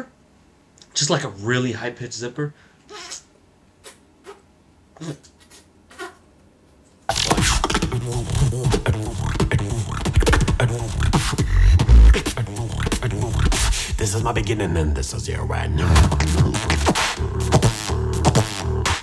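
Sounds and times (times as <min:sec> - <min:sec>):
beatboxing: 0:07.1 - 0:19.0.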